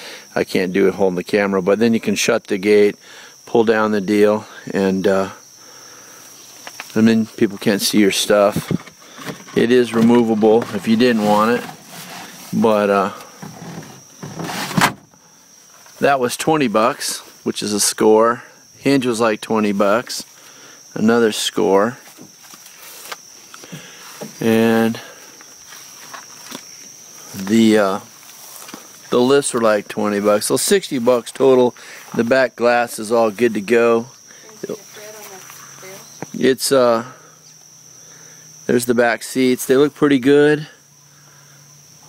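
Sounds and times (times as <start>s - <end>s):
crickets droning: 0.0s - 42.0s
cargo cover sliding rasp: 8.7s - 12.6s, 13.4s - 15.0s.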